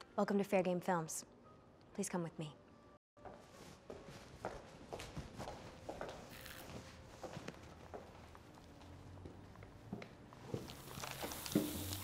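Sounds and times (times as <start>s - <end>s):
high heels on hard floor: 3.2s - 12.0s.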